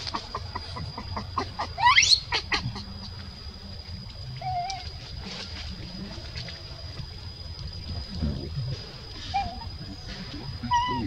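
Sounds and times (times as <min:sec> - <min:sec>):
baby monkey crying: 0:00.0 - 0:02.9, 0:09.2 - 0:09.8, 0:10.6 - 0:11.0.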